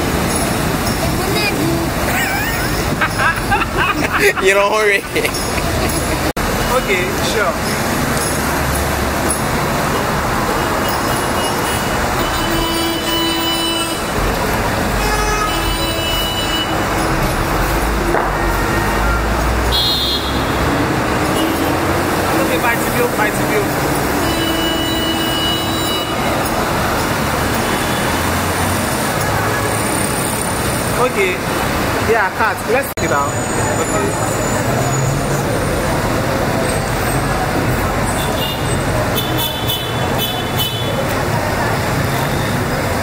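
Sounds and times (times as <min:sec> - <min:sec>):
road traffic passing: 0:00.0 - 0:43.0
indistinct voices: 0:00.1 - 0:12.7.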